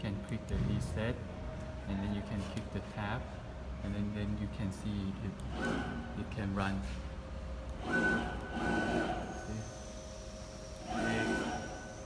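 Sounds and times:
steady machine hum: 0:00.0 - 0:12.0
stepper motors whining: 0:05.4 - 0:06.2, 0:07.7 - 0:12.0.

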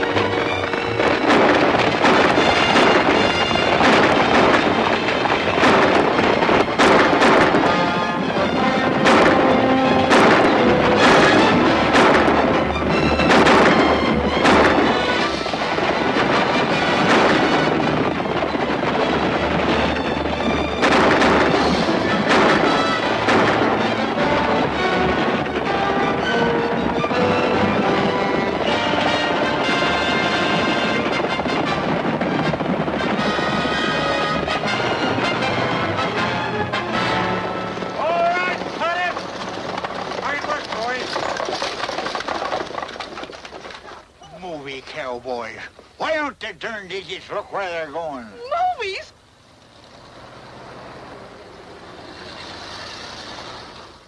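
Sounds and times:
fast orchestral chase music: 0:00.0 - 0:42.3
sharp gunshots: 0:00.7 - 0:08.0, 0:08.8 - 0:18.2, 0:20.8 - 0:25.9.

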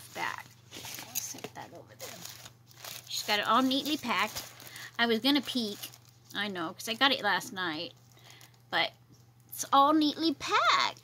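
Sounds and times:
paper rustling and crinkling: 0:00.0 - 0:06.4.

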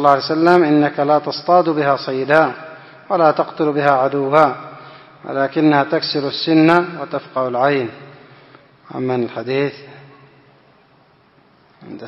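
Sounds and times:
man speaking: 0:00.0 - 0:08.2, 0:08.8 - 0:10.2, 0:11.8 - 0:12.0
faint room noise: 0:00.0 - 0:12.0.

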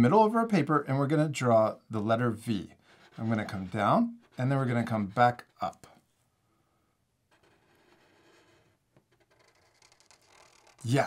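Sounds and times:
felt-tip marker scratching paper: 0:02.8 - 0:05.5, 0:07.3 - 0:10.9.

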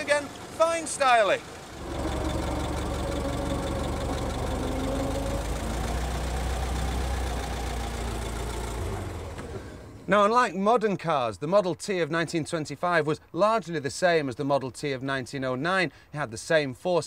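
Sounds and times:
car engine running: 0:00.0 - 0:10.1.

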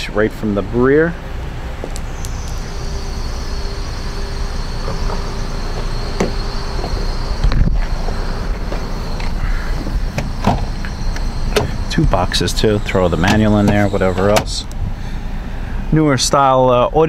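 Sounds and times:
low background rumble: 0:00.0 - 0:17.0
car door thump: 0:04.8 - 0:08.0, 0:09.8 - 0:10.9, 0:11.5 - 0:11.8, 0:13.2 - 0:14.9.

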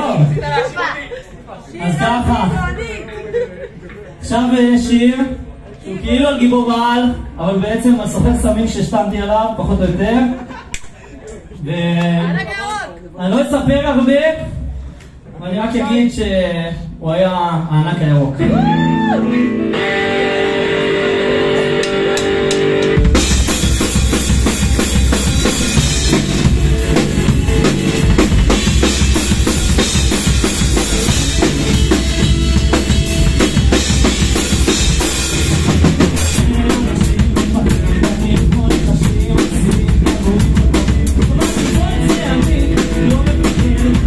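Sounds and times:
electric guitar notes ringing: 0:18.4 - 0:36.3
rock band playing: 0:18.4 - 0:44.0.

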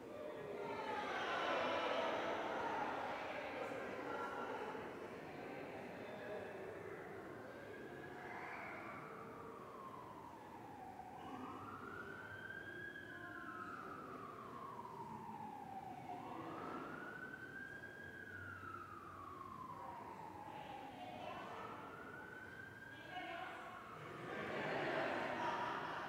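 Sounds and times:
faint siren wailing: 0:00.0 - 0:26.0.

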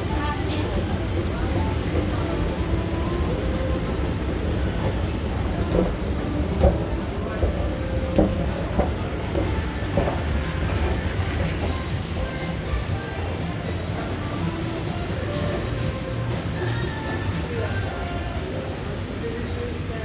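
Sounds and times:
escalator rumbling and clacking: 0:00.0 - 0:17.8.

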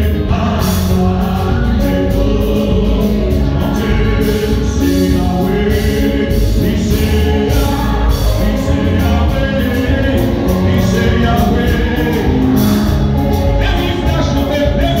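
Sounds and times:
amplified band with strong bass: 0:00.0 - 0:15.0
voices singing gospel song: 0:00.0 - 0:15.0.

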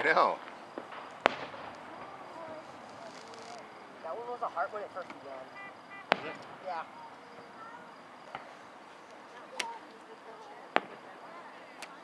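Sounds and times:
distant fireworks bangs: 0:00.0 - 0:08.8, 0:10.7 - 0:11.4.

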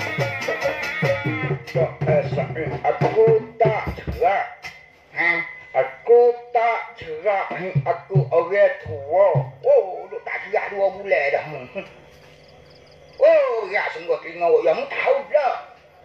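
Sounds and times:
ensemble music with drum notes: 0:00.0 - 0:05.8, 0:07.0 - 0:09.8.

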